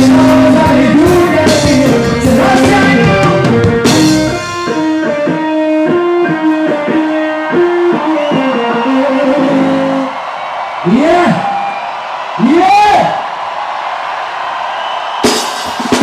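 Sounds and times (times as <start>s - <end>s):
guitar picking a melodic phrase: 0.0s - 9.6s
live band with drums: 0.0s - 10.2s, 15.0s - 16.0s.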